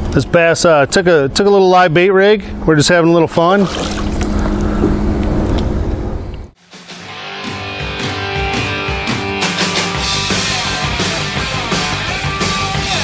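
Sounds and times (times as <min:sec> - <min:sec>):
steady low hum: 0:00.0 - 0:06.6
fish splashing at water surface: 0:03.6 - 0:05.4
rock music with electric guitar: 0:06.6 - 0:13.0.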